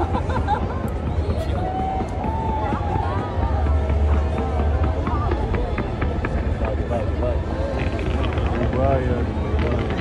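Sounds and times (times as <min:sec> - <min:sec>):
crowd talking and calling out: 0:00.0 - 0:10.0
fireworks crackling: 0:00.0 - 0:10.0
low rumble: 0:00.0 - 0:10.0.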